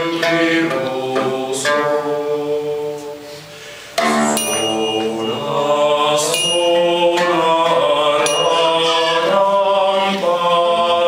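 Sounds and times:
mixed choir singing slow chant: 0.0s - 11.0s.

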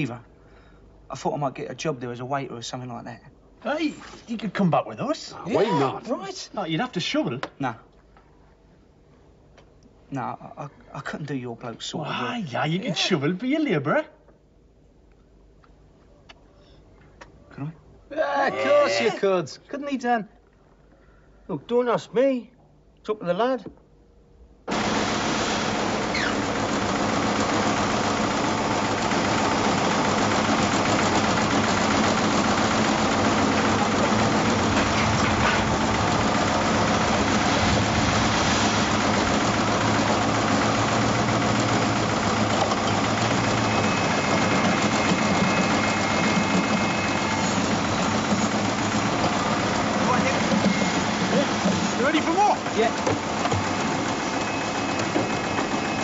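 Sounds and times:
machinery engine drone: 24.7s - 56.0s.

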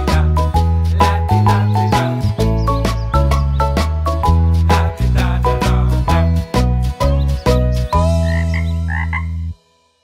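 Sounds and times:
cartoon frog croak: 8.0s - 9.6s.

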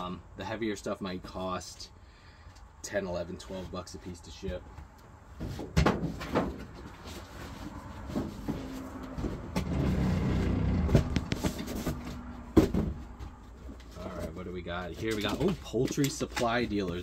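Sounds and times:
cardboard scraping: 5.4s - 17.0s
cardboard box of books shifted: 6.2s - 12.9s
box knocks: 10.9s - 13.4s.

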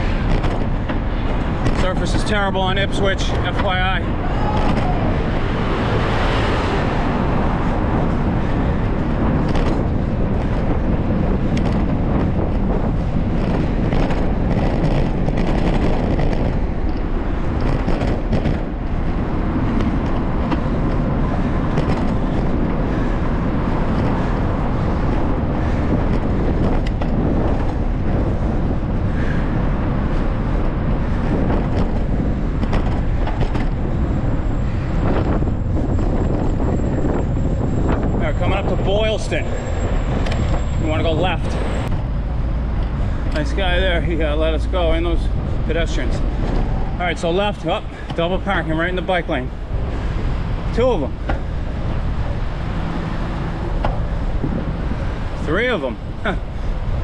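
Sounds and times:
bicycle jolts and rattles: 0.0s - 57.0s
bicycle rumbling on rough pavement: 0.0s - 57.0s
wind buffeting microphone: 0.0s - 57.0s.

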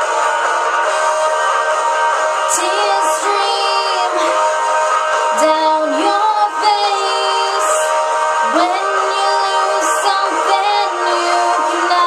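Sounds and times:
held accompaniment chords: 0.0s - 12.0s
woman singing: 2.5s - 4.4s, 5.3s - 12.0s.

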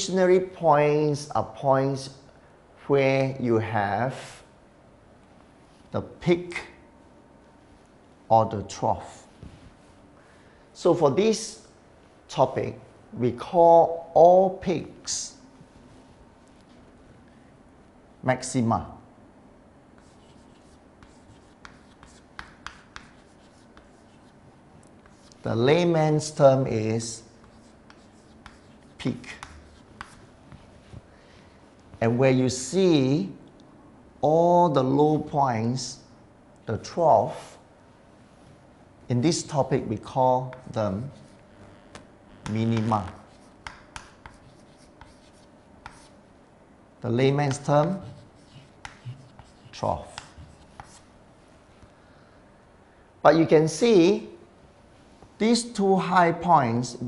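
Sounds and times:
chalk tapping on chalkboard: 20.0s - 24.3s, 27.4s - 30.7s, 42.4s - 46.2s, 47.5s - 51.0s
chalk scratching on chalkboard: 20.0s - 24.4s, 25.0s - 25.5s, 27.4s - 31.0s, 42.4s - 46.2s, 47.4s - 51.1s
pen strokes on board: 20.0s - 24.4s, 27.4s - 31.0s, 42.4s - 46.2s, 47.5s - 51.1s
pen tapping on board: 43.6s - 44.4s.

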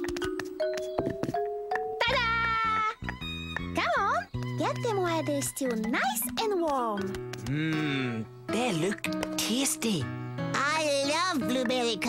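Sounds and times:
bouncy cartoon music: 0.0s - 12.0s
high wordless voice-like melody: 2.0s - 3.1s.

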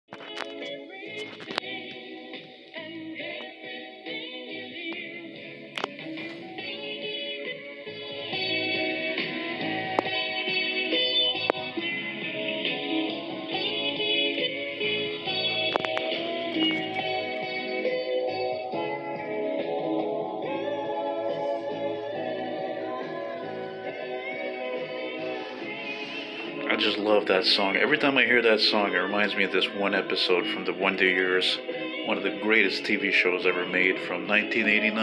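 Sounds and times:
song with guitar on radio speaker: 0.1s - 35.0s.

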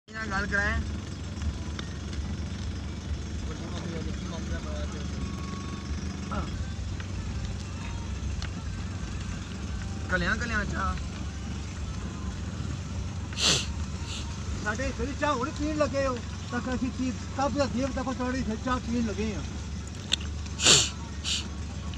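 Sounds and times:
car driving rumble from inside: 0.1s - 21.9s
brief voices: 13.4s - 14.4s, 20.6s - 21.6s.

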